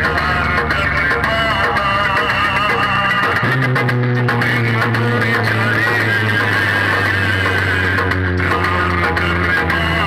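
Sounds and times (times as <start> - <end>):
loud music from horn loudspeakers: 0.0 - 10.0.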